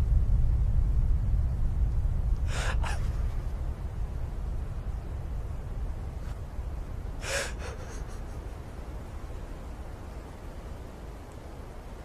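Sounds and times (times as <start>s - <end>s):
steady low rumble: 0.0s - 12.0s
man gasping for breath: 2.5s - 3.0s.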